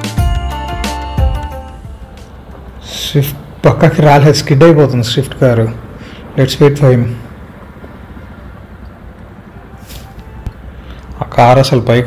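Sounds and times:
short hiss: 0:09.8 - 0:11.0.

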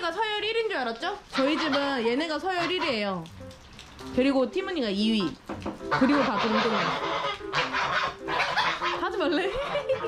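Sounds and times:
geese honking: 0:01.3 - 0:03.2, 0:05.0 - 0:10.0.

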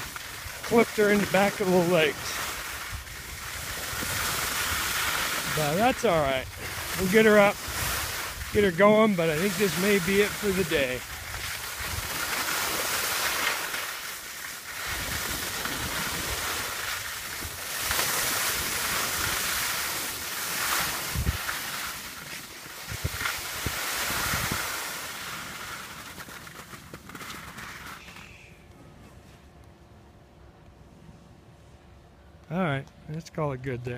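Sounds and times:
skis sliding on snow: 0:00.0 - 0:28.4
wind over microphone: 0:02.2 - 0:08.8, 0:10.7 - 0:12.3, 0:20.8 - 0:21.6, 0:22.8 - 0:24.9.

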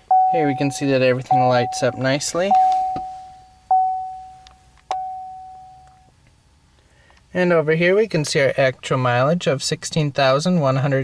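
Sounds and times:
electronic warning ding: 0:00.1 - 0:05.9.

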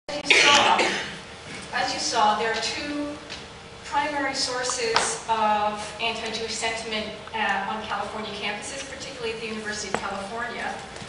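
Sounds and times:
woman speaking: 0:00.1 - 0:01.0, 0:01.7 - 0:10.9
loud cough: 0:00.3 - 0:01.2.

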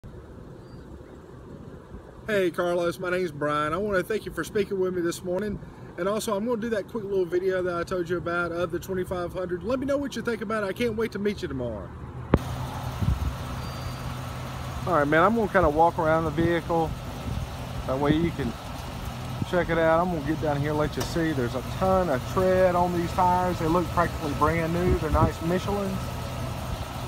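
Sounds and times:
low outdoor rumble: 0:00.0 - 0:27.0
vehicle engine idling: 0:12.3 - 0:27.0.

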